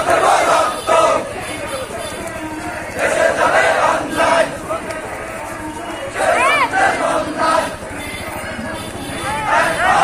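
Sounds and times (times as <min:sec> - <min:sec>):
crowd shouting slogans in unison: 0:00.0 - 0:10.0
hubbub of voices: 0:00.0 - 0:10.0.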